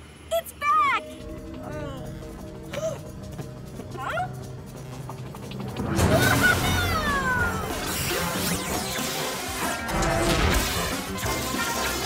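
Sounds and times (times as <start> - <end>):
action music: 0.7 - 12.0.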